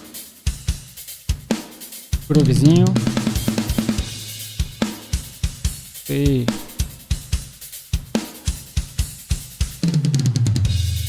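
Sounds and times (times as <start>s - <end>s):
fast drum strokes: 0.0s - 11.0s
low drum tone: 2.3s - 4.2s, 6.1s - 6.9s
heavy drum hits: 2.3s - 5.3s.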